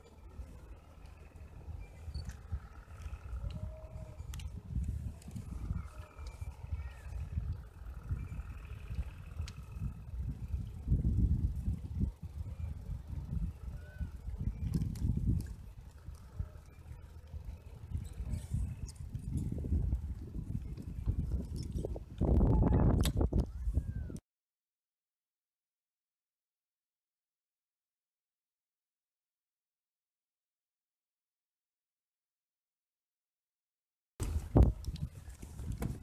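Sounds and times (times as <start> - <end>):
bicycle road noise on pavement: 0.0 - 24.2, 34.2 - 36.0
wind buffeting microphone: 0.1 - 24.2, 34.2 - 36.0.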